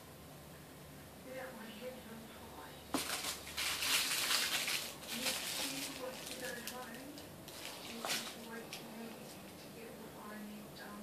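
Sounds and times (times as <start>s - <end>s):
plastic bag crinkling: 2.9s - 9.6s.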